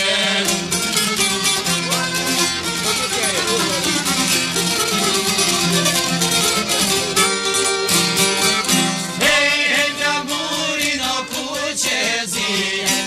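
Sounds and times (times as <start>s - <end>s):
plucked lutes: 0.0s - 13.0s
violin: 0.0s - 13.0s.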